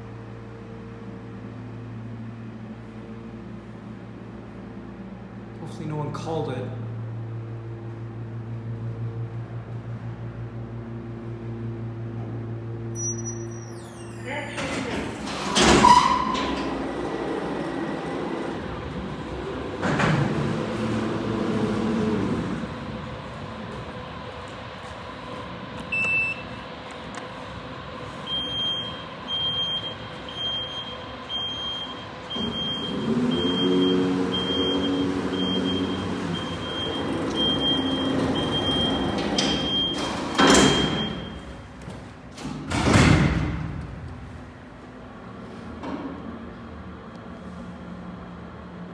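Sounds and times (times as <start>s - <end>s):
elevator drive hum: 0.0s - 48.9s
elevator car clunk: 12.2s - 24.6s, 28.3s - 44.4s.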